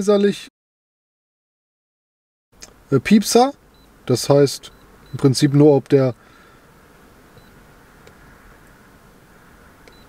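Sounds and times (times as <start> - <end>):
low background hiss: 2.6 - 10.0.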